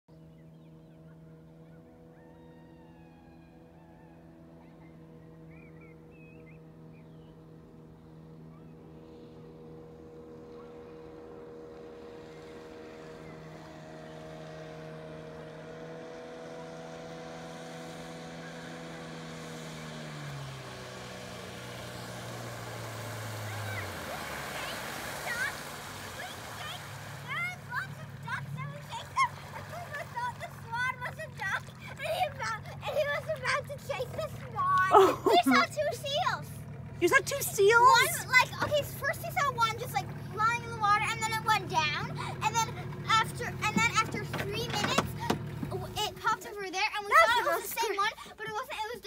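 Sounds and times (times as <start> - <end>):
outboard motor humming: 0.1 - 49.0
water rushing from boat wash: 8.0 - 49.0.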